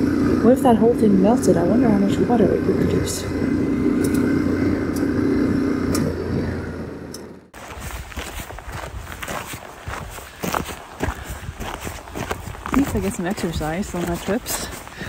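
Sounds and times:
motorcycle engine running: 0.0s - 15.0s
footsteps on stony ground: 7.6s - 15.0s
wind on microphone: 7.6s - 15.0s.

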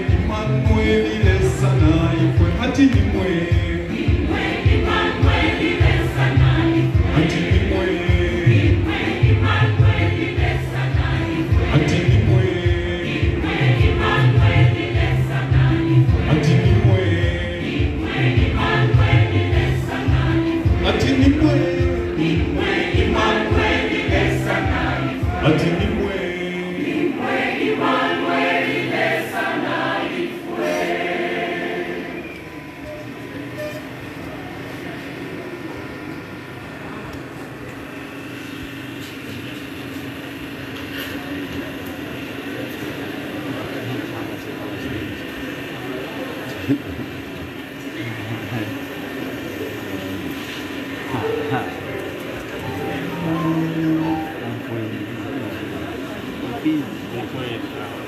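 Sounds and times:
steady low beat: 0.0s - 26.7s
church choir singing: 0.0s - 32.7s, 50.6s - 54.7s.

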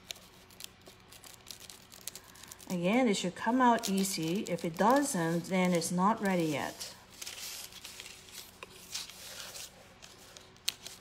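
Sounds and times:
parchment paper crinkling and tearing: 0.0s - 11.0s.

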